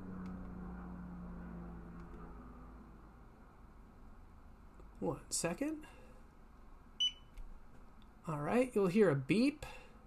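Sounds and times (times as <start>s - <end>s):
short high beep: 7.0s - 7.3s.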